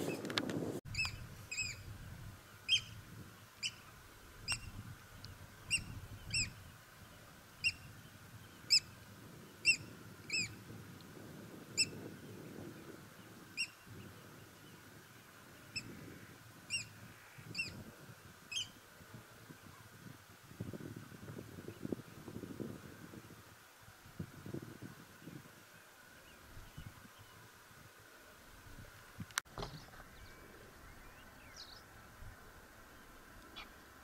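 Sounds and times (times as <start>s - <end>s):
bird calling: 0.9s - 1.9s, 2.7s - 3.0s, 5.7s - 6.7s, 7.6s - 7.9s, 8.6s - 9.0s, 9.6s - 10.6s, 13.6s - 13.8s, 15.7s - 17.8s, 18.5s - 18.8s, 33.4s - 33.8s.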